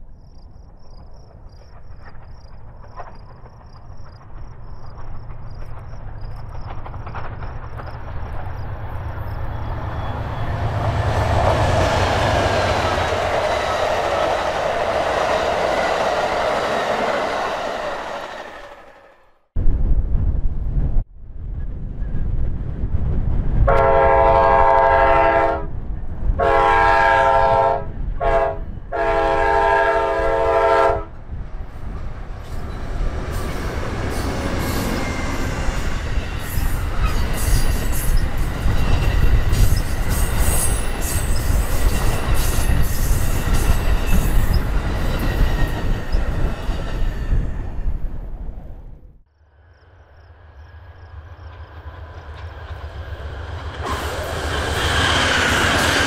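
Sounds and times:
train rolling past rumble: 0.0s - 56.0s
high-pitched wheel squeals: 9.4s - 10.8s, 34.2s - 47.7s
locomotive air horn: 23.7s - 25.7s, 26.4s - 31.2s.

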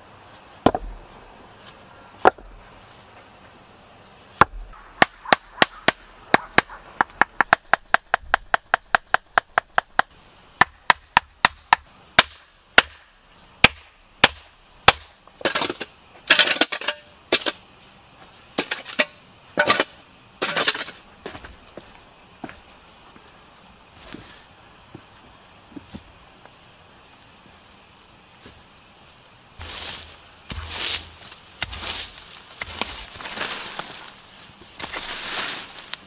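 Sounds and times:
stones knocking into place: 0.6s - 1.0s
scraping rustling bursts: 29.6s - 36.0s.

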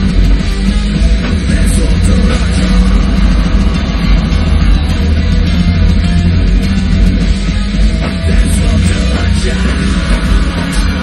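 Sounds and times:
drum kit hit hard: 0.0s - 11.0s
heavy metal band playing: 0.0s - 11.0s.

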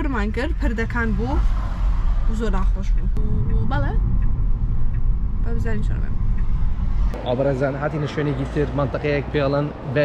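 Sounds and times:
woman talking: 0.0s - 1.4s, 2.3s - 4.0s, 5.5s - 6.1s
road and tyre rumble in car: 0.0s - 10.0s.

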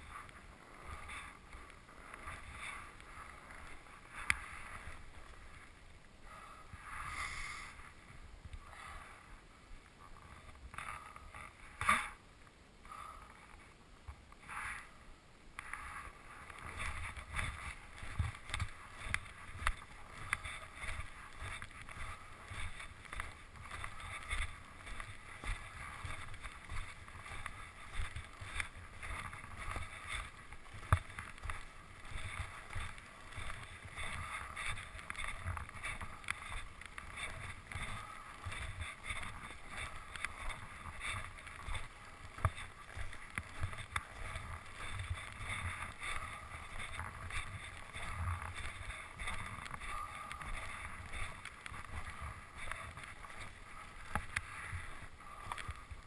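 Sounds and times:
skis hissing over snow: 6.8s - 8.0s
wind rumbling on microphone: 13.5s - 56.0s.

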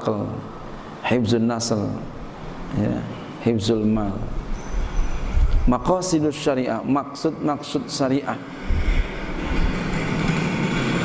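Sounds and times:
low mechanical rumble: 8.4s - 11.0s.

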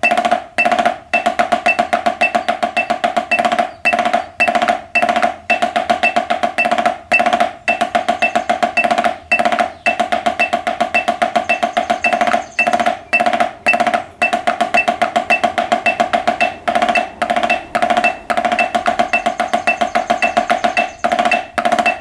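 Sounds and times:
drumsticks playing rolls: 0.0s - 22.0s.

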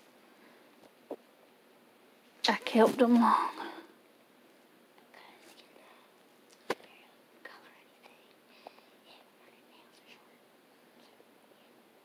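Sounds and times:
soft whispery sounds: 2.4s - 4.0s, 4.9s - 12.0s.

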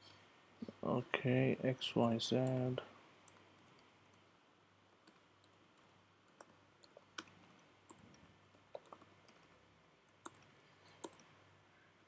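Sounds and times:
computer keyboard and mouse clicks: 3.2s - 4.2s, 5.0s - 11.3s.

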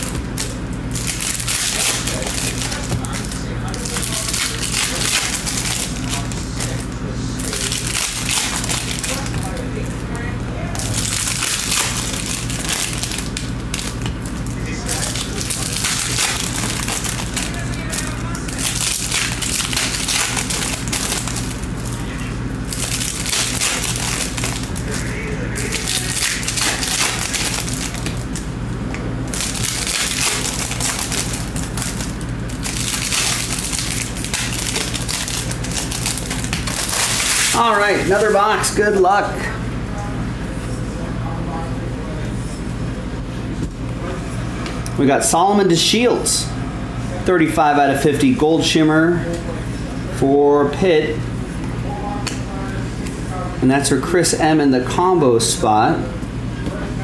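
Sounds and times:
foil wrappers crinkling and tearing: 0.0s - 28.5s, 29.2s - 38.3s
steady low hum: 0.0s - 57.0s.

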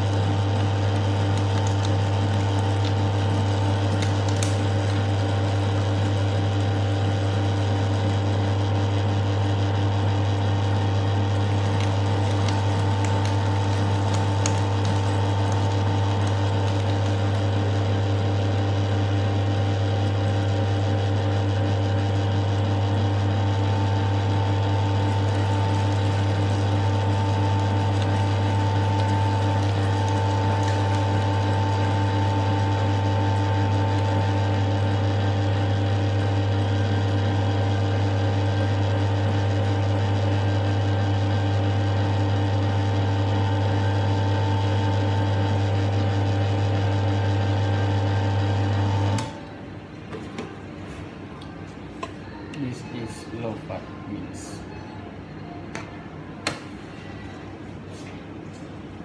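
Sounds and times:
electric meat grinder humming: 0.0s - 49.6s.

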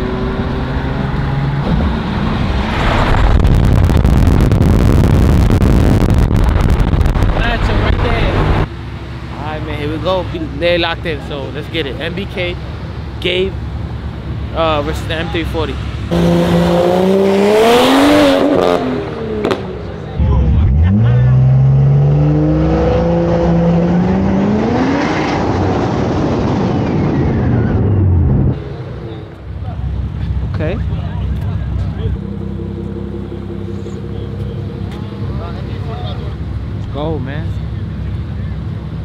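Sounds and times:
car engine at full throttle: 0.0s - 39.0s.

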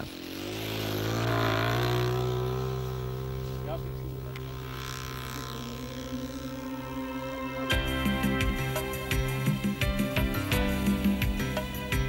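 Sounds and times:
model aeroplane engine drone: 0.0s - 12.0s.

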